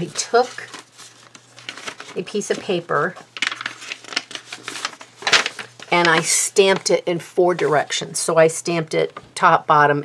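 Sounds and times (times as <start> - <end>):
paper rustling: 0.0 - 7.9.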